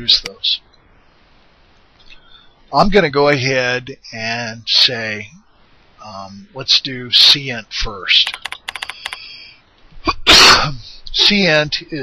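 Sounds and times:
man coughing burst: 10.2s - 10.8s.

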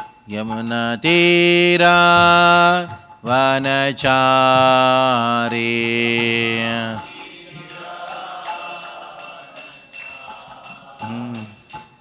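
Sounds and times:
hand cymbals ringing strikes: 0.0s - 12.0s
faint group singing: 2.2s - 11.6s.

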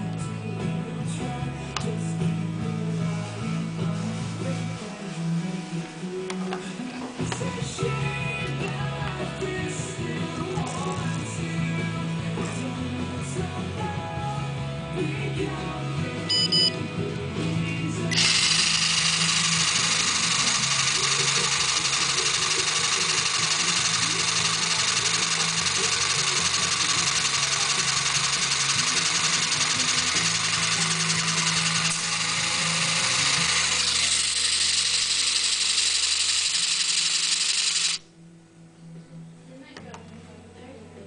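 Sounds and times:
electric motor whirring: 18.1s - 38.0s.

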